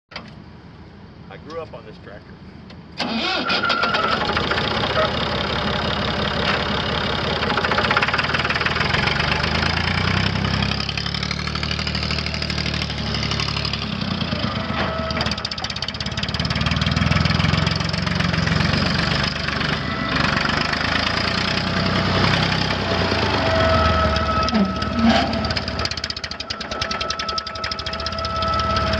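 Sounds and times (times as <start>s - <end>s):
diesel tractor engine revving: 3.0s - 28.9s
thin steady whine: 22.9s - 28.9s.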